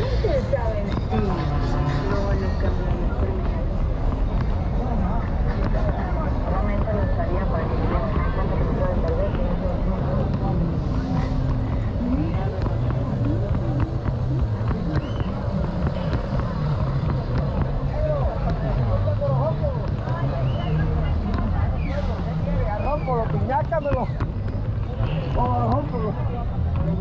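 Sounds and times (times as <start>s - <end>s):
low rumble of traffic: 0.0s - 27.0s
people talking: 0.0s - 27.0s.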